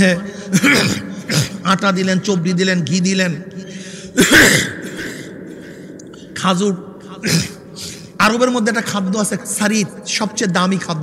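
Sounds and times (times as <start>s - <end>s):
man coughing into microphone: 0.0s - 1.9s, 4.0s - 5.8s, 7.0s - 8.2s.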